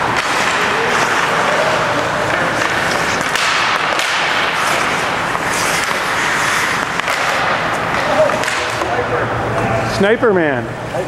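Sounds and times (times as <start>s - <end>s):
skate blades scraping ice: 0.0s - 8.9s
hockey sticks clacking on puck: 0.0s - 9.7s.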